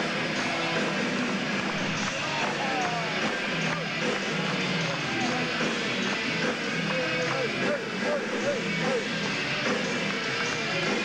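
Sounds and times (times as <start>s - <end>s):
live heavy metal band: 0.0s - 11.0s.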